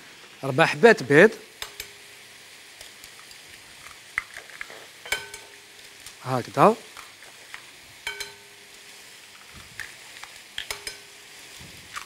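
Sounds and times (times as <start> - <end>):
faint sizzling in frying pans: 0.0 - 12.0
eggshells cracking: 2.8 - 5.0.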